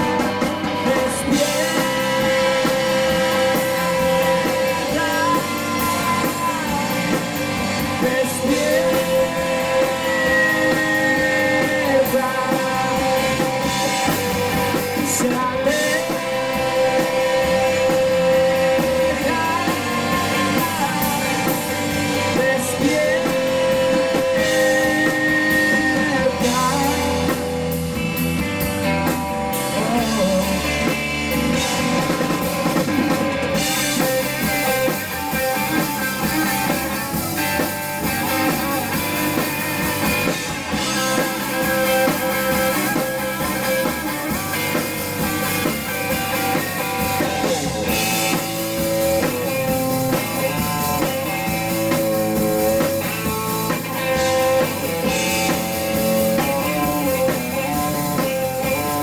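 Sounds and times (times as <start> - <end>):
drum kit: 0.0 - 59.0
electric bass: 0.0 - 59.0
electric guitar: 0.0 - 59.0.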